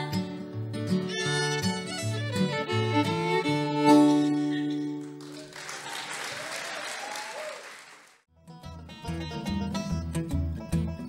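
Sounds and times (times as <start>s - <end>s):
fiddle and guitar tune: 0.0s - 5.3s, 8.4s - 11.0s
string band music with bass: 0.6s - 5.2s, 8.4s - 11.0s
audience applauding: 5.0s - 8.3s.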